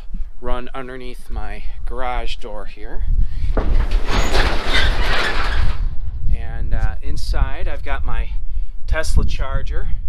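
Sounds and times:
garage door clunk: 3.4s - 6.1s
garage door rolling up: 3.6s - 6.0s.

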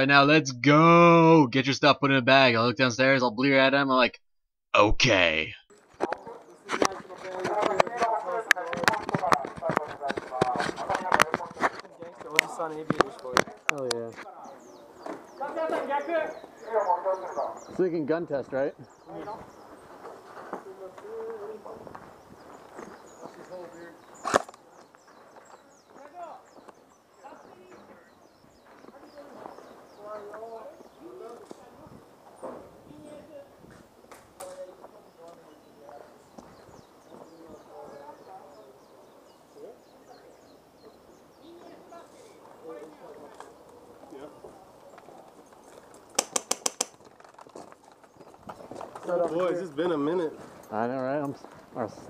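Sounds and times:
faint distant voices: 5.7s - 46.8s.

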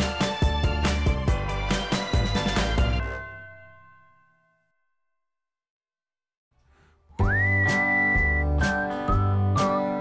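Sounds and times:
music accompaniment with beat: 0.0s - 3.0s, 7.2s - 10.0s
whistled tune: 7.2s - 10.0s.

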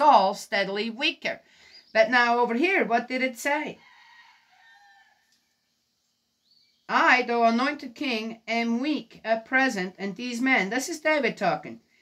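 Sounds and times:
woman speaking: 0.0s - 3.9s, 6.9s - 11.8s
distant rooster crowing: 3.8s - 5.7s.

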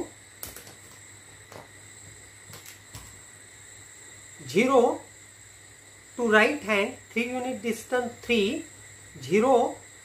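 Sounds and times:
faint high-pitched whine: 0.0s - 10.0s.

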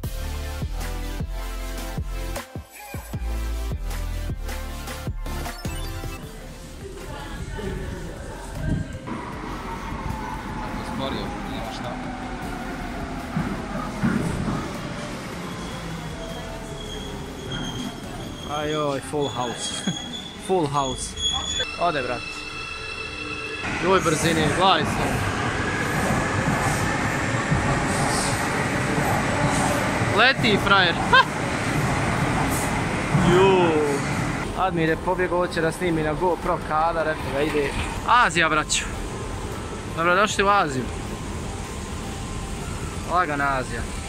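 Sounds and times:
train wheels rumbling on rails: 7.1s - 21.7s, 23.6s - 44.0s
high brake squeal: 15.4s - 25.0s.

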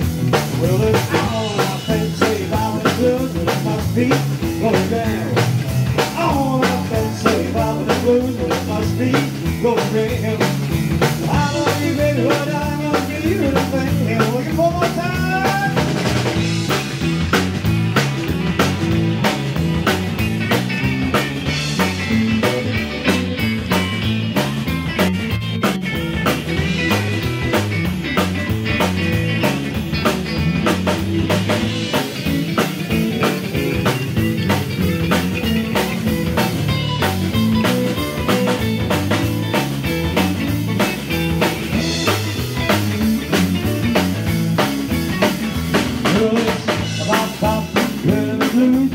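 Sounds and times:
drum kit steady beat: 0.0s - 48.9s
electric bass: 0.0s - 48.9s
keyboards: 0.0s - 48.9s
live rockabilly blues band: 0.0s - 48.9s.

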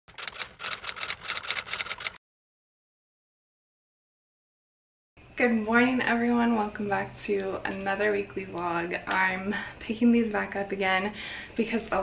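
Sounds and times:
typewriter keys clacking: 0.1s - 2.2s.

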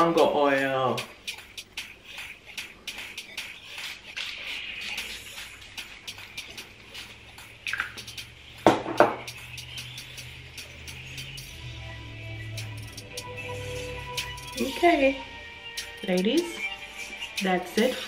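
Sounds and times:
faint background music: 0.0s - 18.0s.

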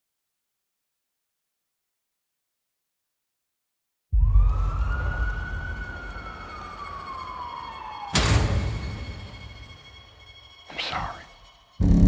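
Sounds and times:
siren-like wail: 4.2s - 12.0s.

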